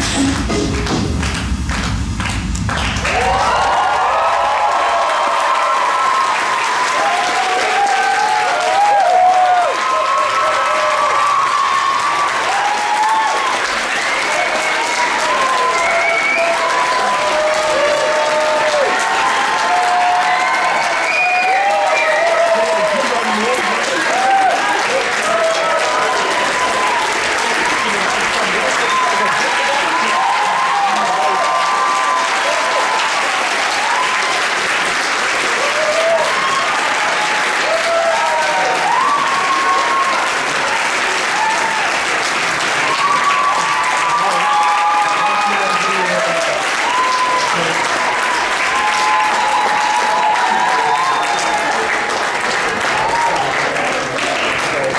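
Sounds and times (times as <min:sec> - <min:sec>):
audience applauding: 0:00.0 - 0:54.9
crowd whooping and calling out: 0:02.9 - 0:34.6, 0:35.5 - 0:42.1, 0:42.7 - 0:54.0.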